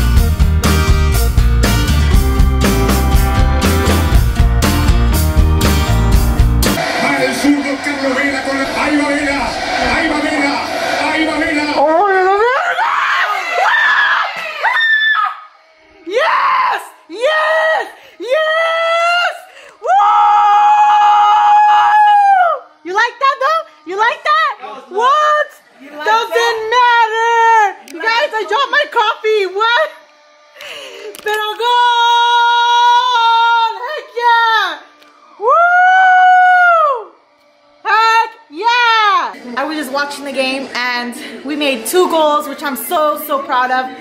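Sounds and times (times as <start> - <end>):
excited screaming and yelling: 6.8 - 30.1, 31.2 - 44.0
long high-pitched cry: 12.2 - 24.5, 29.6 - 37.2.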